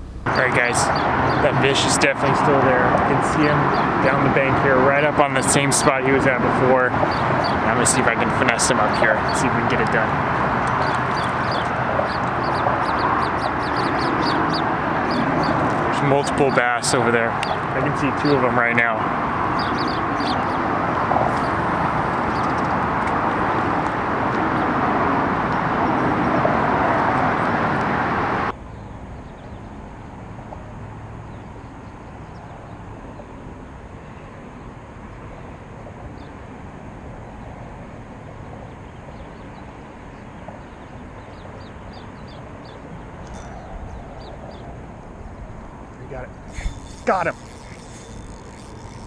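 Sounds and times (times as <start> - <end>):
freeway traffic noise: 0.0 - 49.0
faint high ticks: 46.5 - 49.0.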